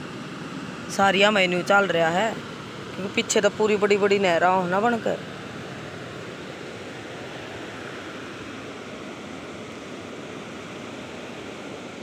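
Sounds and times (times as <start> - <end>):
water rushing and churning: 0.0 - 12.0.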